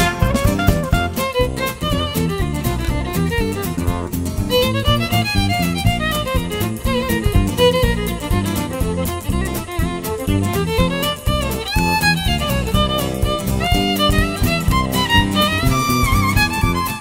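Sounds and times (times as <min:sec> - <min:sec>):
fiddle lead: 0:00.0 - 0:17.0
western swing band: 0:00.0 - 0:17.0.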